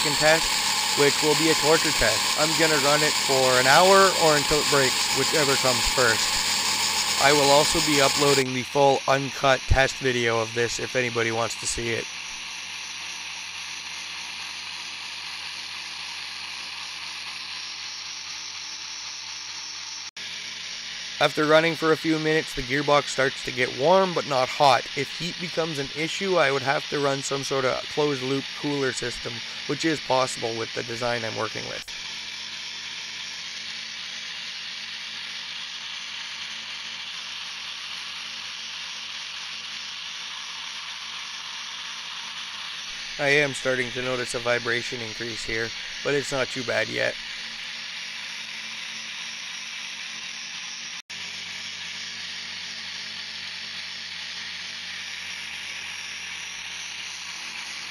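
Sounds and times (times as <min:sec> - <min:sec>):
supercharger airy hiss: 0:00.0 - 0:57.9.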